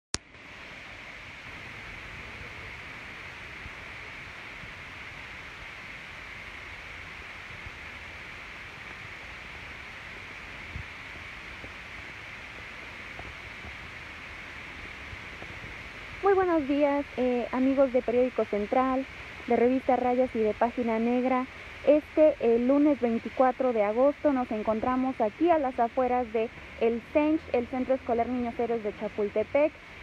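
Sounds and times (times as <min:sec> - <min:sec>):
steady background hiss: 0:00.2 - 0:30.0.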